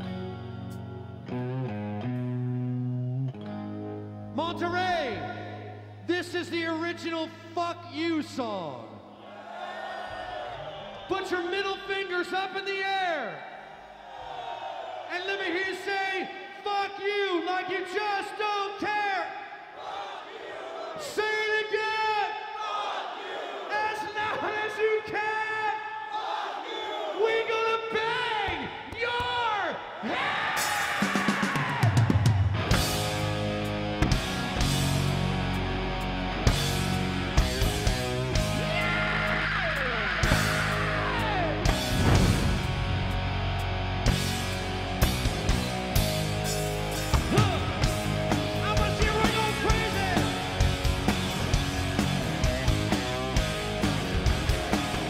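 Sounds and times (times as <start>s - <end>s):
rock band playing: 0.0s - 4.4s, 30.6s - 55.0s
singer and crowd shouting: 9.2s - 32.3s, 38.5s - 41.8s, 47.2s - 50.4s
heavy drums: 30.4s - 55.0s.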